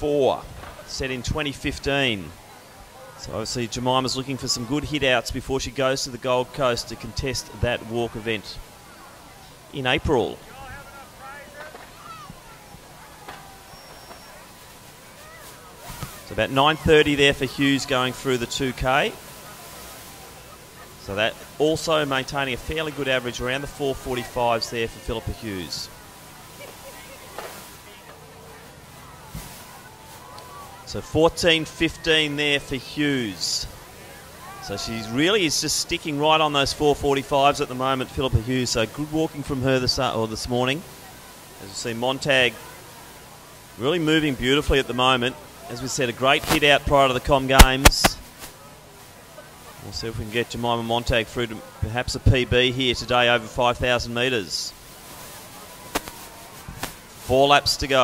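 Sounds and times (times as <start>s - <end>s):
faint distant voices: 0.0s - 58.0s
faint outdoor background noise: 0.0s - 58.0s
sharp cracks: 55.9s - 57.0s.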